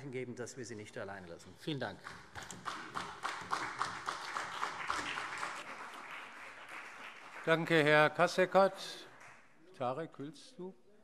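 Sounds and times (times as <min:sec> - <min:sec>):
people clapping: 0:01.8 - 0:09.6.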